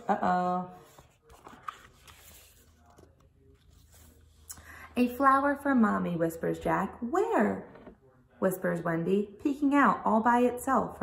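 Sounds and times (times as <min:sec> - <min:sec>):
paper page turning: 0:00.8 - 0:04.5.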